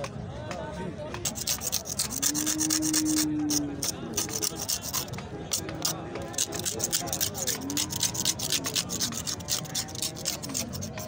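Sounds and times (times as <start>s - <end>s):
steel file scraping horn: 1.2s - 5.2s, 5.8s - 11.0s.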